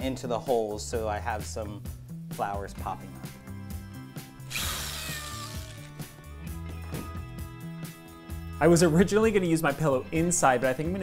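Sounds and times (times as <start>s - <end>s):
background music: 0.0s - 11.0s
cordless drill running: 4.4s - 6.1s.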